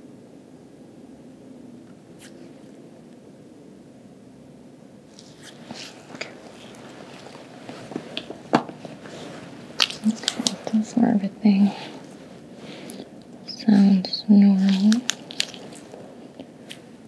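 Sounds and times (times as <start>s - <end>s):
soft rustling of fabric: 5.1s - 17.0s
soft speech: 10.0s - 12.0s, 13.5s - 15.1s.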